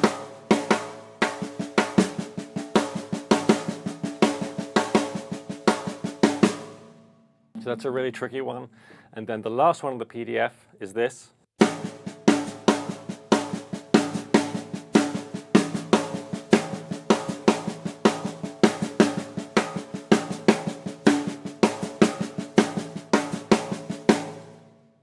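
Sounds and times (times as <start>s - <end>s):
snare drum rim shots and ghost notes: 0.0s - 6.9s, 11.6s - 24.6s.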